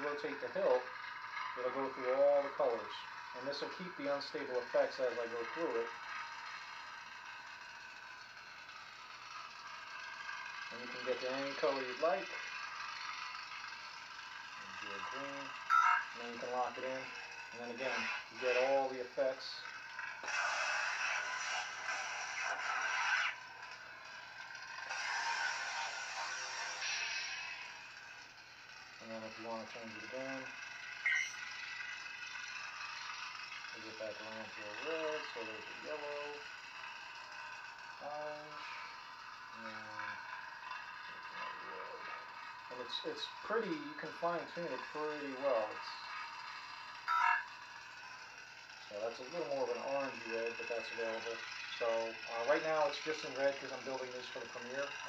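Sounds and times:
crackling lightsaber hum: 0:00.0 - 0:55.0
lightsaber blade hum: 0:14.6 - 0:28.3, 0:29.0 - 0:37.0
bright multi-tone sound effect: 0:31.1 - 0:31.4.

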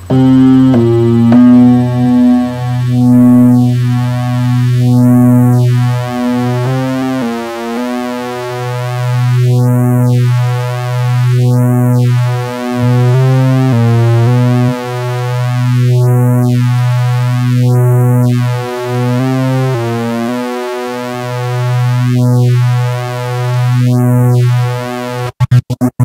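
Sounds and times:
buzzy synth tone: 0:00.0 - 0:25.3.

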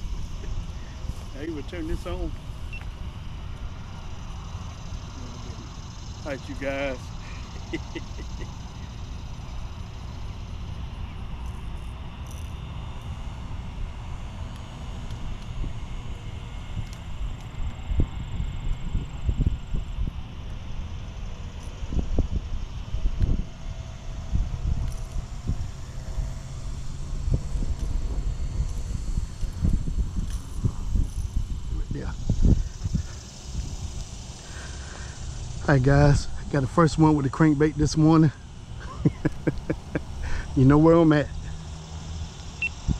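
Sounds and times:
wind buffeting microphone: 0:15.1 - 0:34.4.

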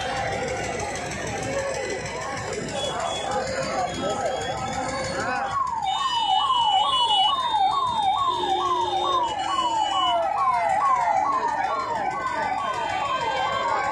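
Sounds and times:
crowd noise: 0:00.0 - 0:13.9
electronic siren wailing: 0:03.2 - 0:13.9.

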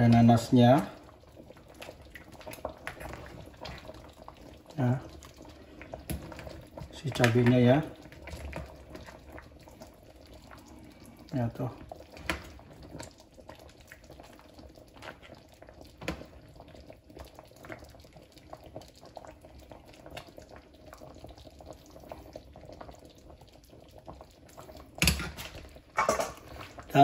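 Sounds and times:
sauce bubbling and dripping: 0:00.0 - 0:27.0.

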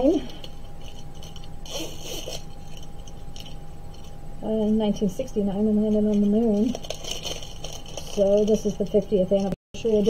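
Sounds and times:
packaging rustle: 0:05.9 - 0:10.0.

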